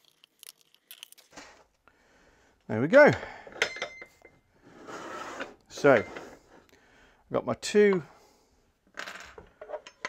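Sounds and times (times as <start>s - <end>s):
wooden box scraping on wood: 4.7s - 6.4s.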